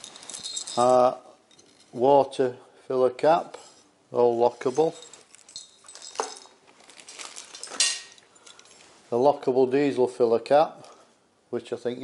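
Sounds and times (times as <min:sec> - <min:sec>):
metal caps clinking: 0:00.0 - 0:02.0, 0:04.6 - 0:08.9.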